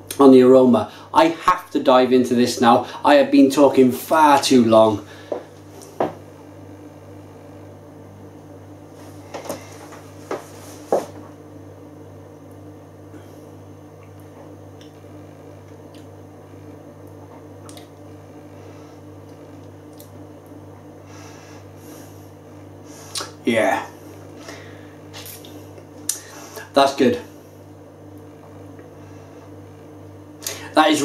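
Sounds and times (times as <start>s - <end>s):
low electrical hum: 0.0s - 31.0s
man sipping and swallowing: 25.1s - 26.3s.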